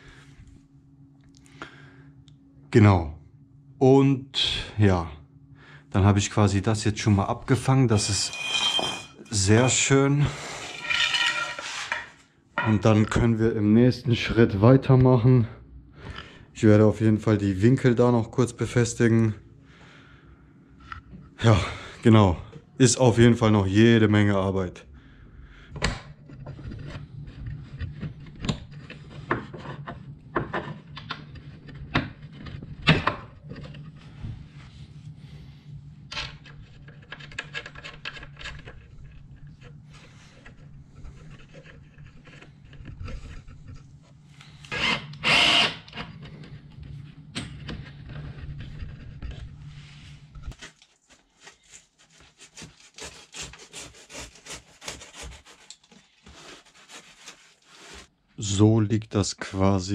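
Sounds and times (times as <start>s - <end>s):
steady low hum: 0.0s - 53.4s
loud scrape: 8.0s - 9.7s, 10.3s - 12.2s.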